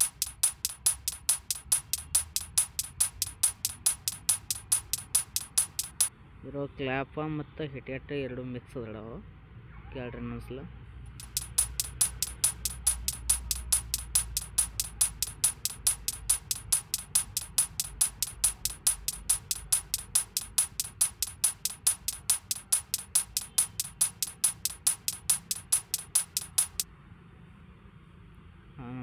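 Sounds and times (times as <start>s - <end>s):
sharp high hi-hat hits: 0.0s - 6.1s, 11.2s - 26.8s.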